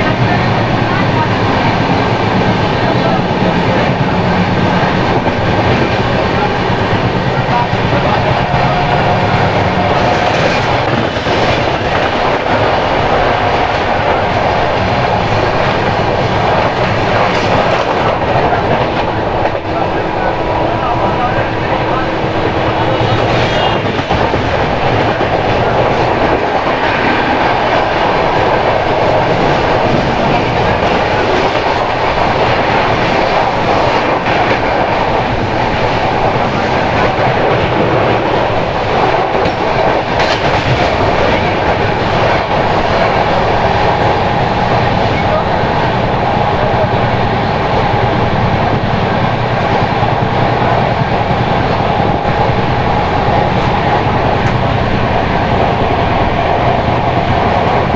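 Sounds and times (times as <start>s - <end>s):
train wheels rumbling on rails: 0.0s - 57.9s.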